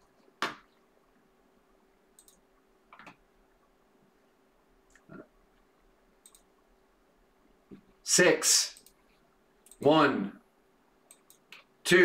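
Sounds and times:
faint steady hum: 0.0s - 12.0s
computer mouse and keyboard clicks: 2.2s - 3.2s, 6.2s - 6.5s.

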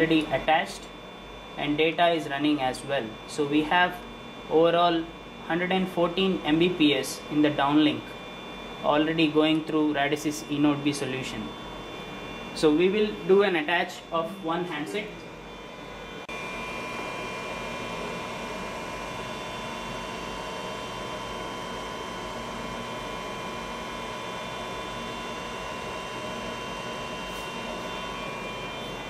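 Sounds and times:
electronics and cooling fans humming: 0.0s - 29.0s.

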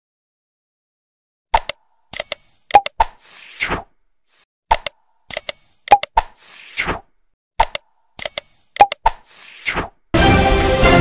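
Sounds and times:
quick clicks: 1.5s - 3.4s, 4.3s - 7.0s, 7.6s - 9.8s
whooshing swish: 9.2s - 10.0s.

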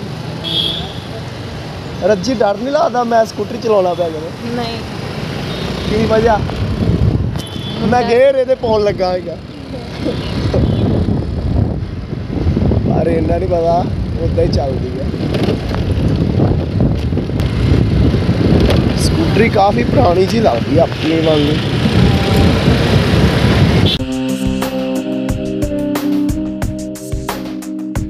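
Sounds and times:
road noise: 0.0s - 24.0s
scooter engine: 4.4s - 11.4s, 15.2s - 24.0s
wind rumble on microphone: 6.3s - 8.2s, 10.2s - 24.0s.

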